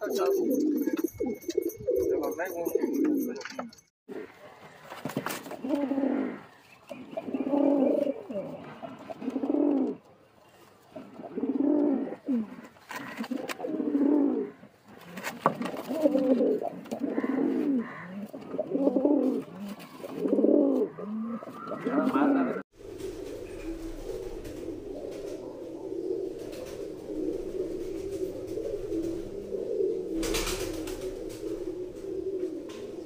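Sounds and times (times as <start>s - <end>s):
pigeons cooing: 0.0s - 10.1s, 10.9s - 33.0s.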